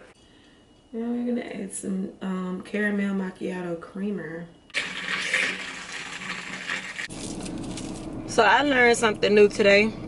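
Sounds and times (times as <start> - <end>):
liquid pouring into glass jar: 4.8 - 7.1.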